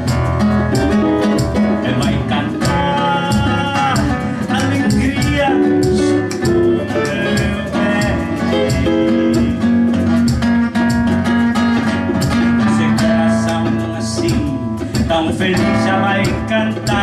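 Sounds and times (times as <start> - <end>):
cajon beat: 0.0 - 17.0
electric guitar: 0.0 - 17.0
strummed acoustic guitar: 0.0 - 17.0.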